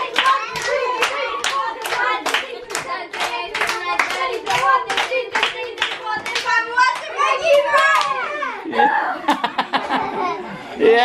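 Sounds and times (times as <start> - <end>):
children cheering and shouting: 0.0 - 10.8.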